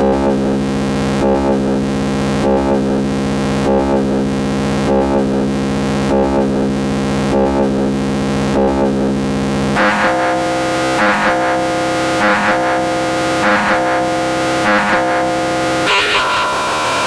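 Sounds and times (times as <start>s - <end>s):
bright synth pulse: 9.8s - 17.0s
synthesizer drone: 9.8s - 17.0s.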